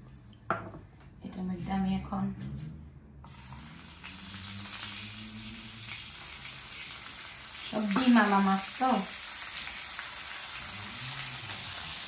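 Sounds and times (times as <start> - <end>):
fish frying in hot oil: 3.3 - 12.0.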